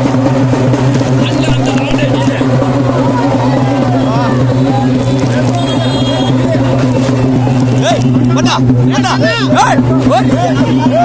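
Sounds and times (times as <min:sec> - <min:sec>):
people calling out: 0:07.6 - 0:11.0.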